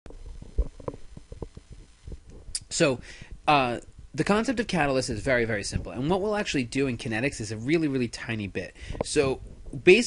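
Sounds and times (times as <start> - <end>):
low irregular knocks and bumps: 0.1 - 2.6.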